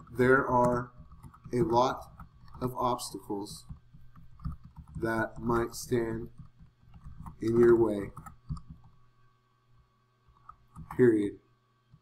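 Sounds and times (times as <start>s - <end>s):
computer keyboard keystrokes: 0.0s - 9.0s, 10.4s - 11.1s.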